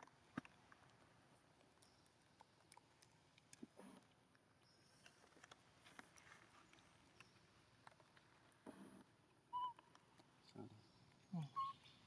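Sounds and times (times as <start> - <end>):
macaque high coo: 11.3 - 11.8.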